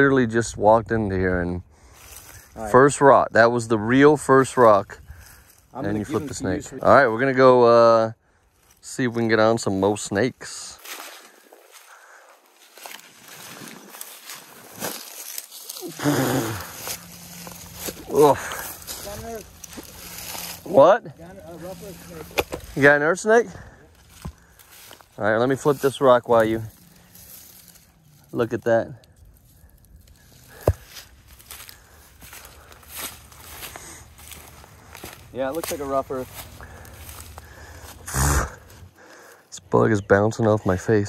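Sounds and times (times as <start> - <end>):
footsteps crunching through dry grass: 1.6 - 39.8.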